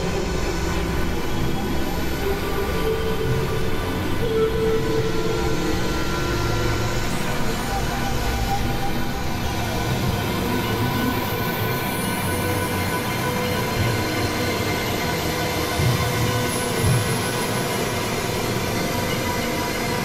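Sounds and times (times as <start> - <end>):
electronic drone music: 0.0 - 20.0.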